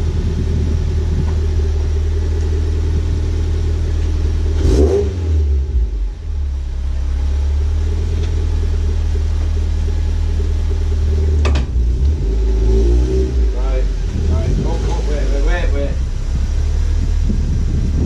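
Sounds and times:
car engine idling: 0.0 - 18.0.

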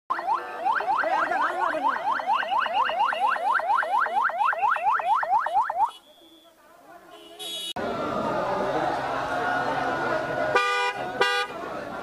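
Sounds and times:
police siren yelping: 0.1 - 6.0.

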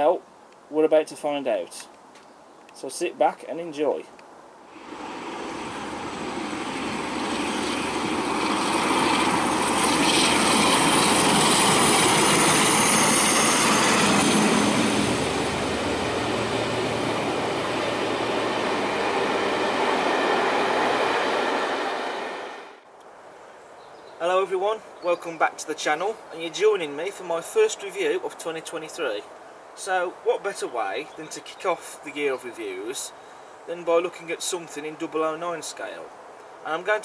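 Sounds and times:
passenger train passing: 4.7 - 22.8.

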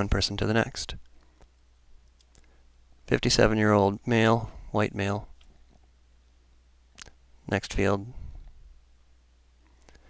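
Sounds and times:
steady low hum: 0.0 - 10.0
faint clicks: 1.0 - 2.6.

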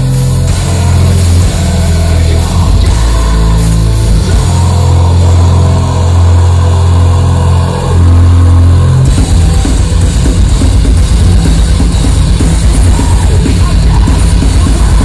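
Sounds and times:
heavy metal band playing loud: 0.0 - 15.0.

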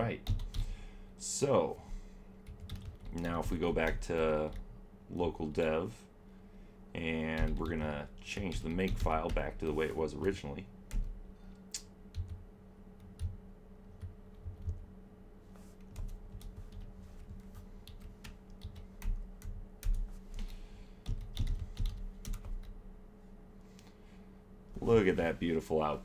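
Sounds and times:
faint steady hum: 0.0 - 26.0
typing on computer keyboard: 0.2 - 0.7, 2.4 - 3.2, 15.9 - 22.7.

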